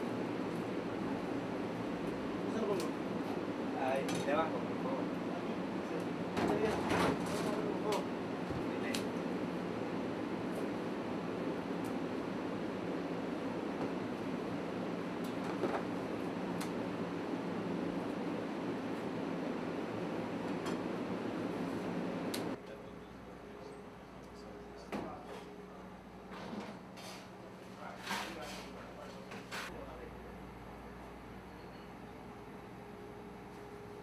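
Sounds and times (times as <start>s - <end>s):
indoor background hum: 0.0s - 34.0s.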